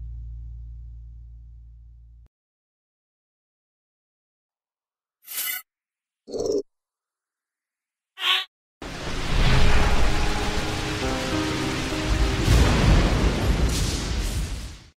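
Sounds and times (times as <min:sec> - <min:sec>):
rain: 0:08.8 - 0:14.9
deep thunder rumble: 0:09.0 - 0:14.9
held musical chord: 0:10.1 - 0:12.6.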